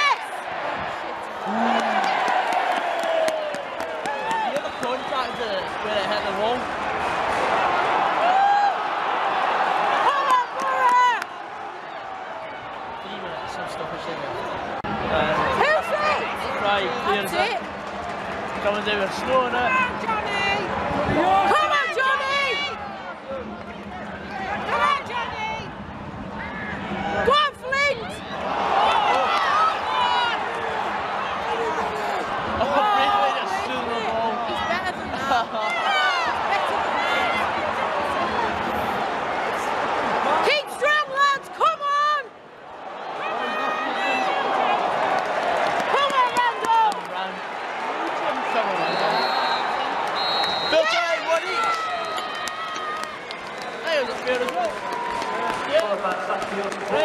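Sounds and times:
crowd shouting: 0.0s - 18.3s, 18.9s - 25.7s, 26.4s - 56.0s.

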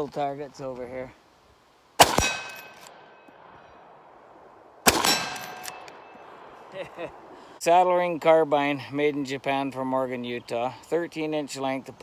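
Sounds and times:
rifle shots: 2.0s - 3.0s, 4.8s - 6.1s
steel target ringing: 4.9s - 6.2s.

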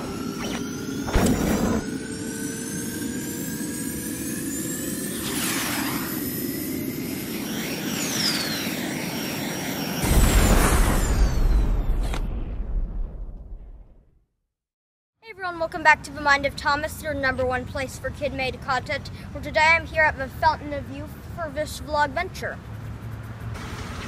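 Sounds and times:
gliding whistling tones: 0.0s - 10.0s
swoosh: 4.7s - 14.0s
rocket rumble: 10.0s - 14.1s.

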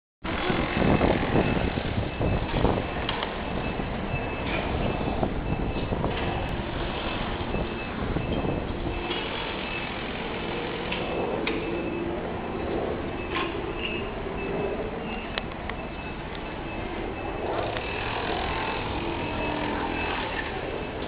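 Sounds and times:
distant traffic hum: 0.2s - 21.0s
wind on microphone: 0.2s - 21.0s.

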